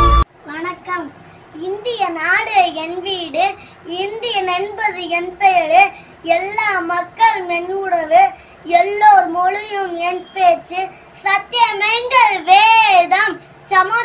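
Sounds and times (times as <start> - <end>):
boy singing a rhyme: 0.5 - 14.0.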